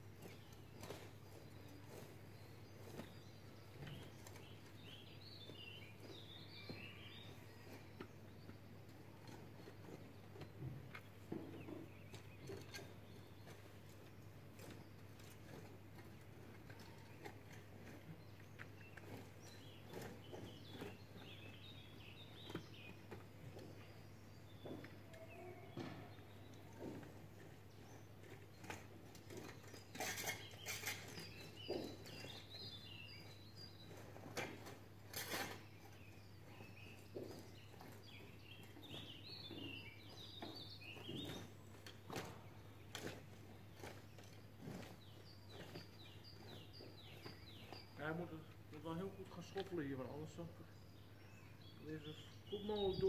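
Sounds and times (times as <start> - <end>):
hoe scraping soil: 0.0 - 53.0
small birds chirping: 0.0 - 53.0.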